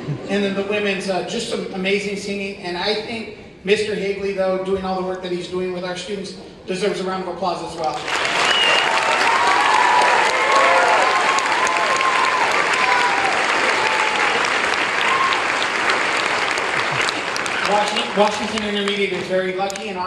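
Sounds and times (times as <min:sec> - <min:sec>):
audience applauding: 0:07.9 - 0:19.9.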